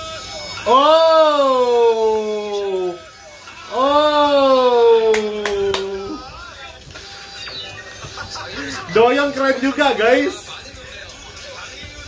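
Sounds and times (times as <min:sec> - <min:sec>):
television voices and music: 0:00.0 - 0:12.0
man exclaiming excitedly: 0:00.7 - 0:03.0, 0:03.7 - 0:06.2
hand claps: 0:05.0 - 0:06.2.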